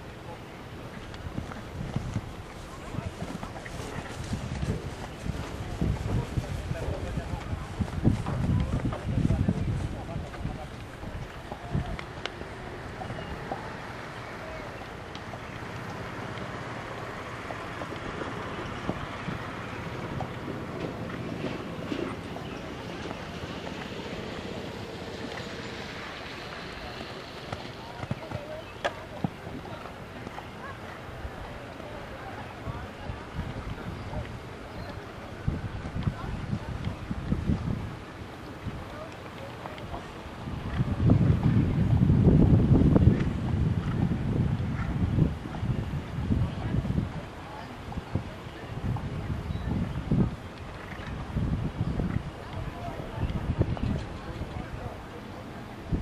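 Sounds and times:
faint distant voices: 0.0 - 56.0
wind on microphone: 0.0 - 56.0
horse hoofbeats on sand: 1.1 - 12.2.

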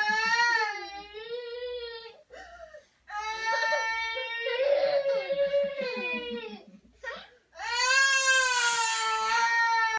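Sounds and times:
baby crying: 3.1 - 9.9.

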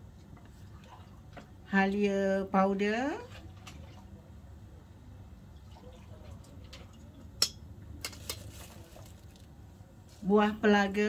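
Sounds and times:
low steady background noise: 0.0 - 11.0.

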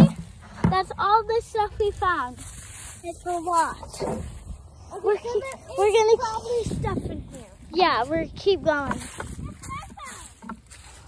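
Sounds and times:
footsteps in dry leaves: 1.9 - 6.5, 7.2 - 11.0.

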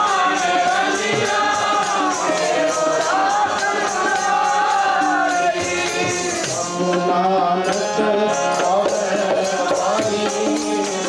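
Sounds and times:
drum beat: 0.0 - 11.0
harmonium: 0.0 - 11.0
jingling percussion: 0.0 - 11.0
voices singing: 0.0 - 11.0.

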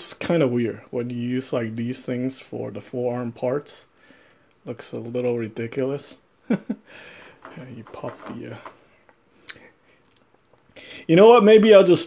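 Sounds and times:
plastic parts clicking together: 7.2 - 9.2.

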